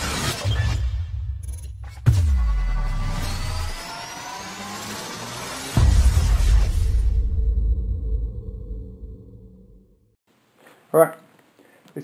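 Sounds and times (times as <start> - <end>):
rising synth sweeps: 2.3 - 7.1.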